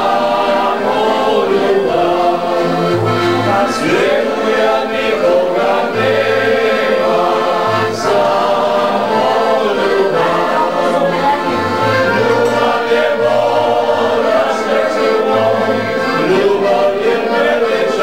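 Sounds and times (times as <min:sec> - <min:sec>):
group singing in chorus: 0:00.0 - 0:18.0
upright bass: 0:00.0 - 0:18.0.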